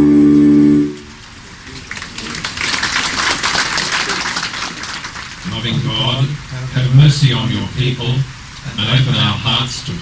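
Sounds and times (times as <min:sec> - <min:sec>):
audience applause: 0:01.6 - 0:06.0.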